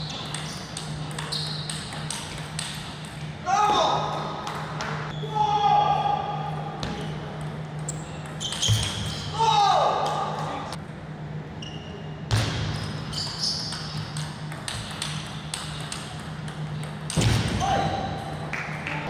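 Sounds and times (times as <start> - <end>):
player shouting: 5.2 - 6.5.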